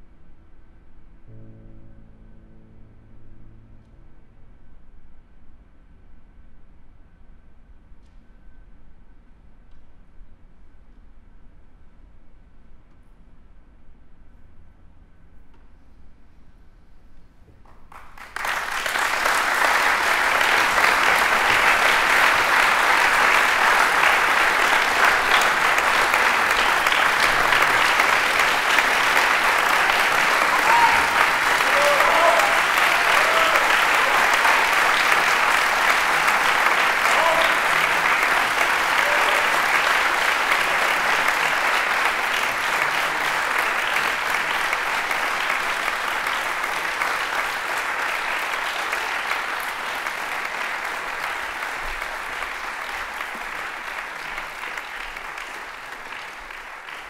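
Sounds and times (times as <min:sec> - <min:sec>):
audience applauding: 0:17.7 - 0:57.0.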